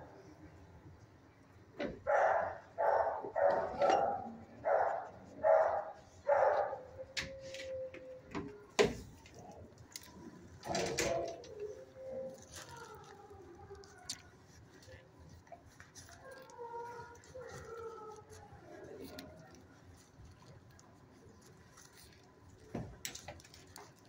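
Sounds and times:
dog barking: 0:02.0 - 0:07.0.

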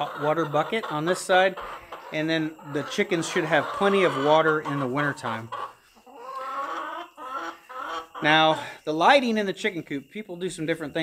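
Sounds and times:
chickens calling: 0:00.0 - 0:11.0.

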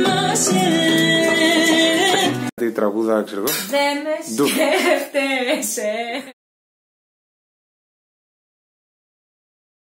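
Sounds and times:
woman talking playfully: 0:03.7 - 0:06.4.

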